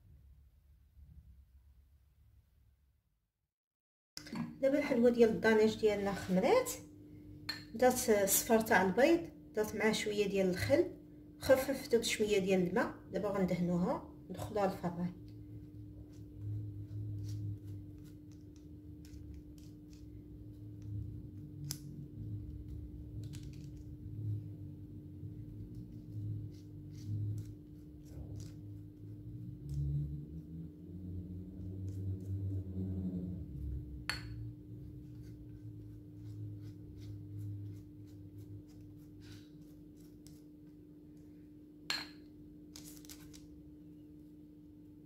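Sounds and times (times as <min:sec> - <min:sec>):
steady low hum: 0:04.2 - 0:45.0.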